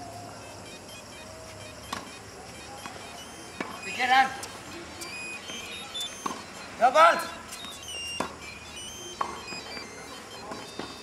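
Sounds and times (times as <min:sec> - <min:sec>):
tennis ball knocks: 0:02.8 - 0:03.8, 0:06.2 - 0:06.5, 0:07.6 - 0:08.4, 0:09.2 - 0:09.8.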